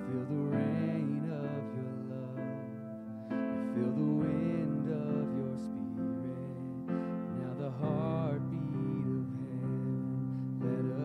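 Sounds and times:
slow keyboard music: 0.0 - 11.0.

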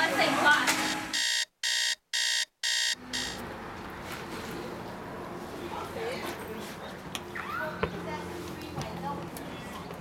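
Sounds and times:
electronic alarm beeping: 1.1 - 3.4.

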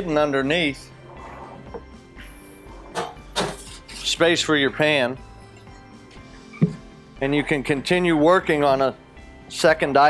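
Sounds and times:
quiet background music: 0.0 - 10.0
metal pan knocking and scraping: 2.8 - 4.0.

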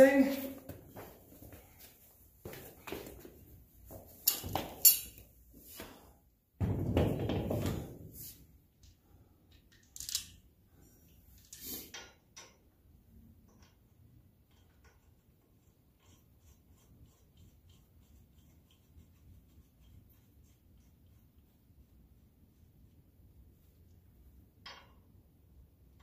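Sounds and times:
metal clinks and knocks: 4.2 - 5.2
tools clattering: 4.2 - 5.2.

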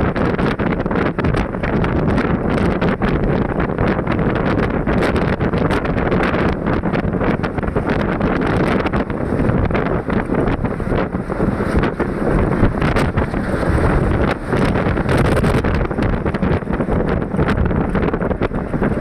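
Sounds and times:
road and engine noise: 0.0 - 19.0
wind buffeting microphone: 0.0 - 19.0.

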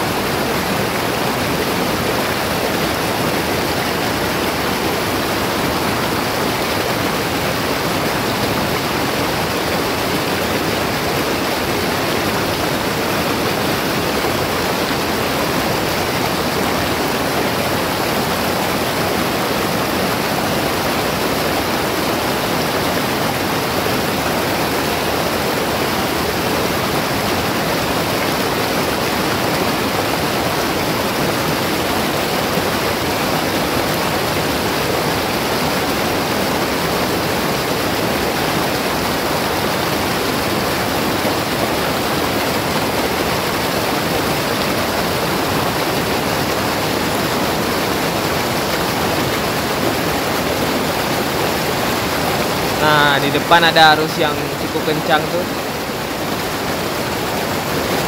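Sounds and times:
river rushing through rapids: 0.0 - 58.0.

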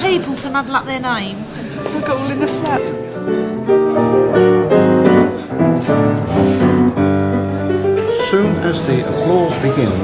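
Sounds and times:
grand piano playing: 1.7 - 10.0.

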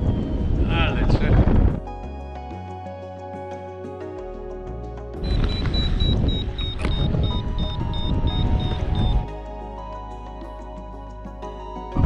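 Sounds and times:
wind rumble on microphone: 0.0 - 2.1, 5.2 - 9.3
background music: 0.0 - 12.0
rapid high-pitched beeping: 5.2 - 9.3.

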